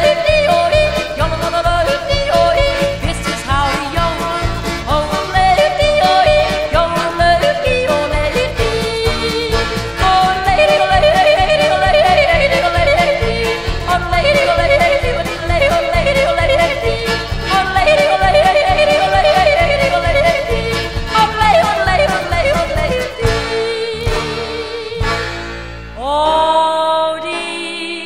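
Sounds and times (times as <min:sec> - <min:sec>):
instrumental accompaniment with beat: 0:00.0 - 0:26.0.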